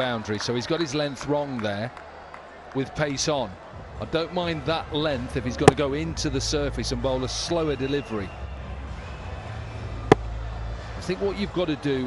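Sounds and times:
low stadium rumble: 2.9 - 12.0
cricket bat striking ball: 5.6 - 5.8.

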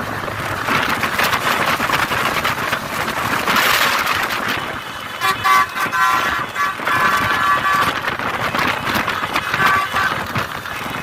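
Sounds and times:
road and wind noise: 0.0 - 11.0
vehicle horn blasts: 4.8 - 10.4.

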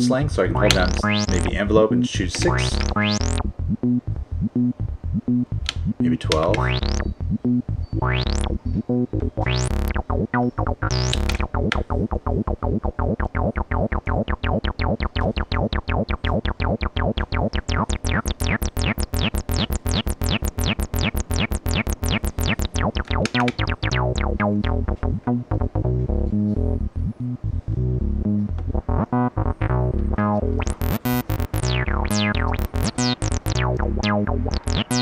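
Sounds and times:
acid bassline synth: 0.0 - 35.0
rising filter squelches: 0.6 - 1.6, 2.4 - 24.9.

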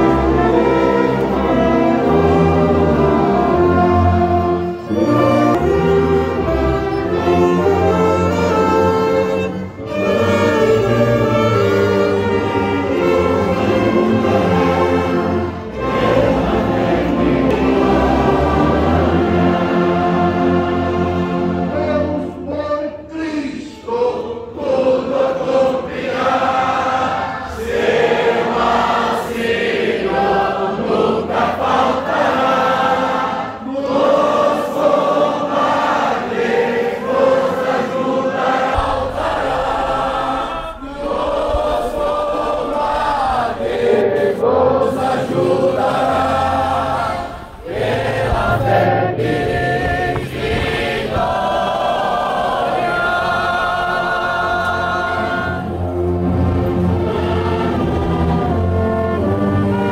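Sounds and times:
group singing a hymn: 0.0 - 22.4, 23.8 - 59.9.

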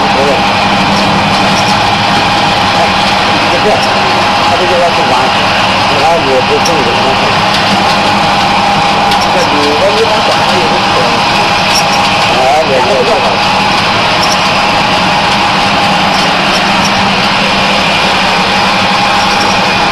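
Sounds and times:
faint voices: 0.0 - 19.9
machine humming with high tone: 0.0 - 19.9.

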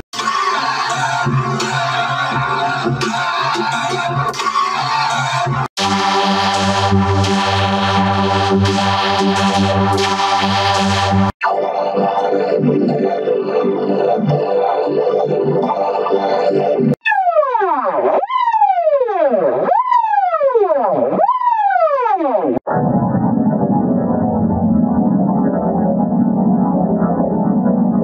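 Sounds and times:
synthesizer logo jingle: 5.8 - 17.4, 22.7 - 28.0.

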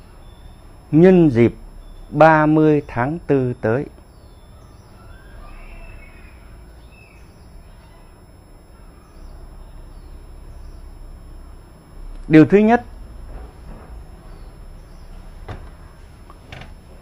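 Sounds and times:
faint bird chirps: 0.0 - 12.1, 14.2 - 16.2
low background noise: 0.0 - 17.0.

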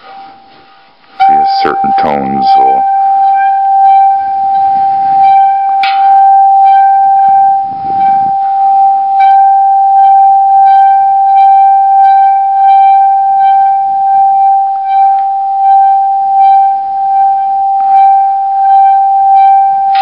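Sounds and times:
singing bowl ringing tone: 1.2 - 20.0.

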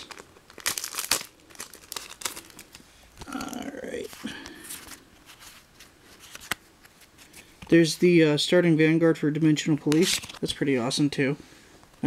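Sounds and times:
foil wrappers crinkling and tearing: 0.0 - 6.6
cards being handled: 0.0 - 7.8, 9.8 - 10.6.

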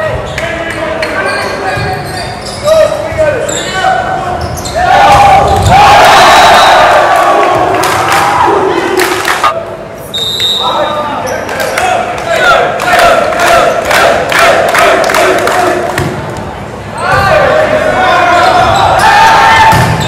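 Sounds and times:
players shouting: 2.7 - 9.6, 10.8 - 16.1, 16.9 - 20.0
crowd cheering and yelling: 4.8 - 9.6.

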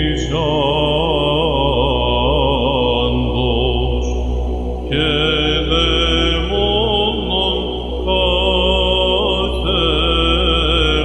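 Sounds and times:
man chanting ornamented line: 0.0 - 11.0
steady electronic drone: 0.0 - 11.0.

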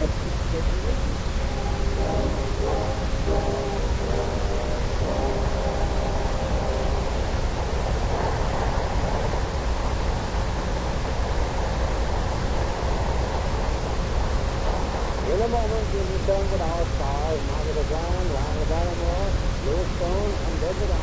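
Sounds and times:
faint sustained tones: 0.0 - 21.0
recording hiss and hum: 0.0 - 21.0.

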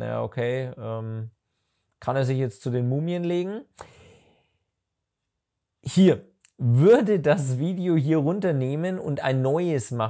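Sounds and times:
person speaking: 5.8 - 10.0.

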